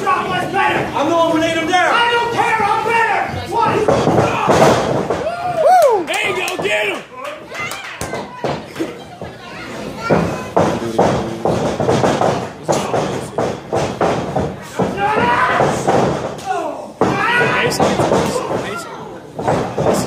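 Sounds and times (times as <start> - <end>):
crowd voices: 0.0 - 20.0
spectators shouting: 1.8 - 7.1, 14.8 - 15.9, 16.5 - 19.0.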